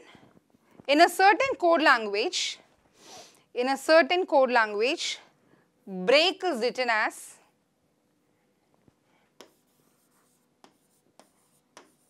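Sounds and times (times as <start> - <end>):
pen tapping on writing surface: 10.6 - 12.0.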